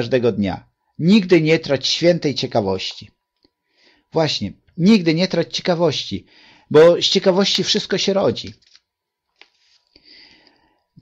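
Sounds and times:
man narrating: 0.0s - 3.2s, 4.1s - 8.6s
soft intake of breath: 3.6s - 4.1s, 6.3s - 6.7s, 9.9s - 11.0s.

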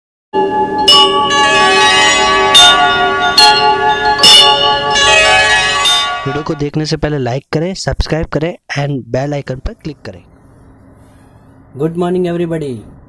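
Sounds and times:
bell-like chime jingle: 0.4s - 6.7s
bright noisy accents: 0.4s - 6.9s.

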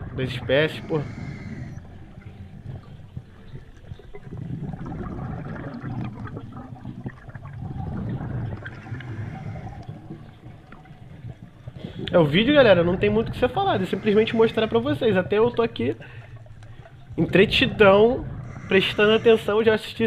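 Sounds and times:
underwater air bubbling: 0.0s - 20.0s.

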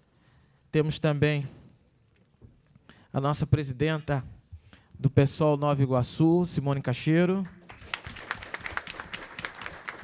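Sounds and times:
scattered hand claps: 7.4s - 10.0s.

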